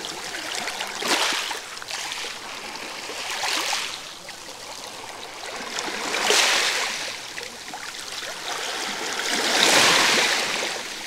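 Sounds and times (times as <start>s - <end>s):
sea waves washing over pebbles: 0.0s - 11.0s.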